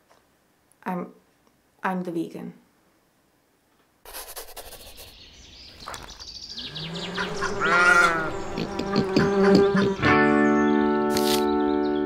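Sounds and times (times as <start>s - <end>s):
high bird chirps: 4.5s - 12.0s
lower drawn-out animal call: 6.5s - 10.2s
long bleating call: 6.7s - 10.1s
plucked guitar music: 8.2s - 12.0s.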